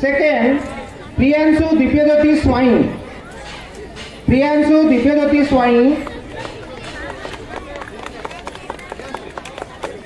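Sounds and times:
faint chatter: 0.0 - 10.0
audience hand clapping: 6.0 - 10.0.

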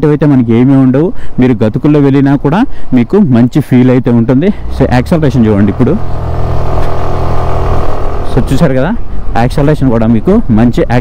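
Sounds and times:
scooter engine running: 5.3 - 8.6.

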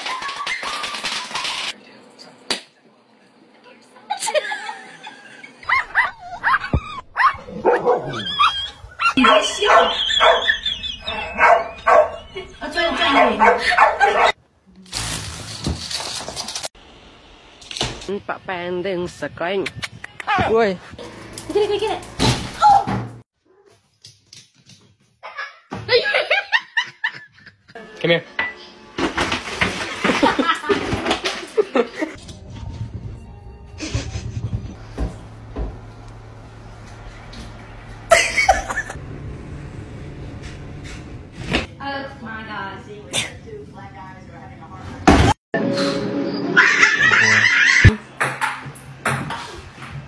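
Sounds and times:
dog yelping: 5.6 - 14.4
person laughing: 30.0 - 31.0, 33.8 - 34.7, 38.1 - 39.0, 46.6 - 48.0.

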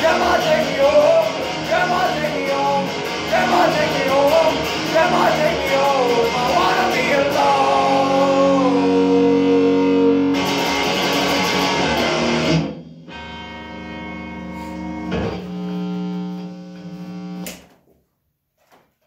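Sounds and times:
electric guitar chords: 0.0 - 17.6.

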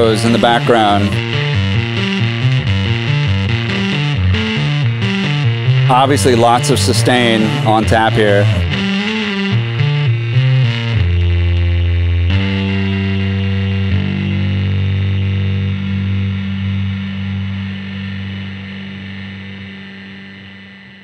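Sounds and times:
electric bass with fuzz: 0.0 - 21.0.

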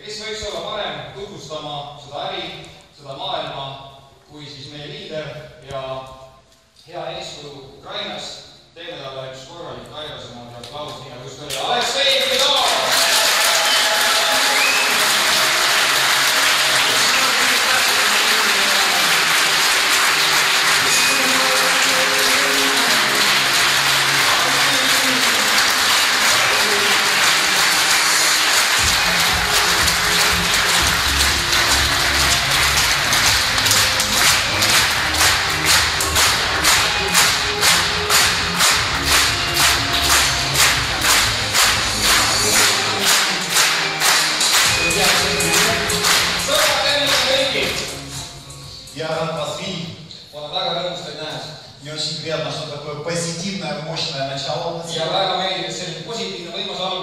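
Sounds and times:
audience applauding: 12.0 - 48.3
loud music: 12.7 - 49.8
bass line: 28.8 - 43.0.

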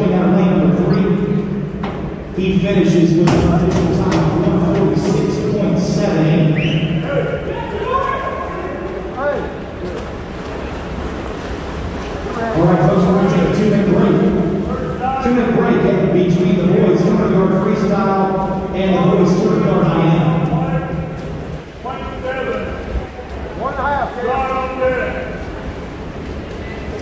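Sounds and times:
voices talking and calling out: 2.4 - 10.9, 12.1 - 25.7.

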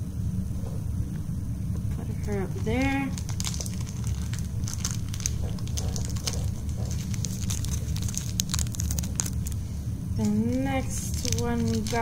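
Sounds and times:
steady low hum: 0.0 - 12.0
light crinkling and crackling: 0.6 - 12.0.

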